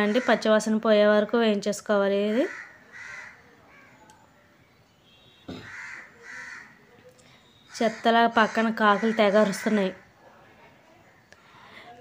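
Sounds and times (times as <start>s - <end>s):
crows cawing: 0.0s - 0.6s, 2.2s - 4.0s, 5.5s - 6.8s, 7.7s - 10.0s.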